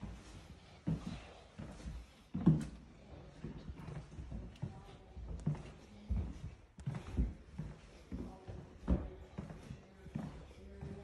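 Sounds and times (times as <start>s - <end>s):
footsteps on hard floor: 0.0s - 11.0s.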